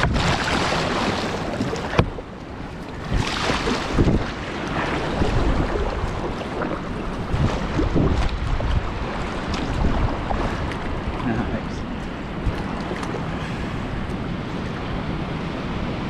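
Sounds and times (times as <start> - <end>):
paddle strokes splashing: 0.0 - 15.0
water washing against hull: 0.0 - 16.0
wind buffeting microphone: 0.0 - 16.0.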